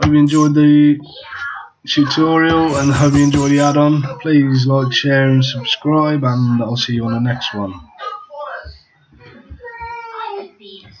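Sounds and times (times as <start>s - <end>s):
high-pitched voice sliding notes: 0.2s - 0.5s, 2.7s - 3.8s.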